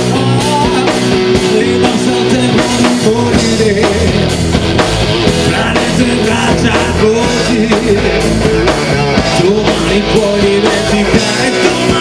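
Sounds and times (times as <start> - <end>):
bass guitar: 0.0 - 12.0
electric guitar: 0.0 - 12.0.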